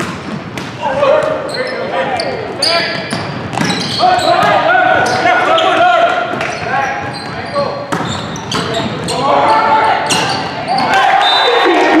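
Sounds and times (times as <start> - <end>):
players and spectators shouting: 3.8 - 7.0, 9.0 - 12.0
crowd cheering: 9.4 - 12.0.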